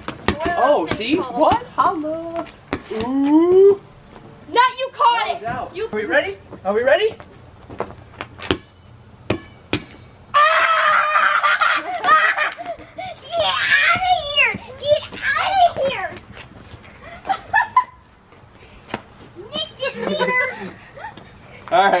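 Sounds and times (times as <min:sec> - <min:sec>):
rubber ball bouncing on concrete: 0:00.0 - 0:03.4, 0:07.7 - 0:10.1
people laughing and shrieking: 0:10.4 - 0:13.8.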